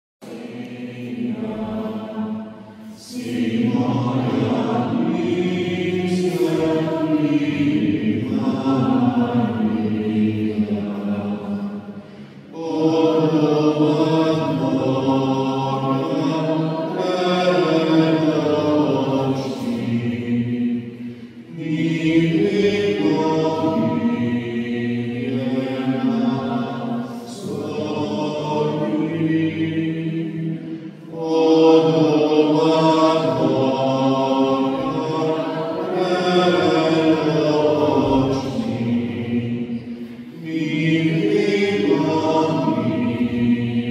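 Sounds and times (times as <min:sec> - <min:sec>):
choir singing chant: 0:00.2 - 0:43.9.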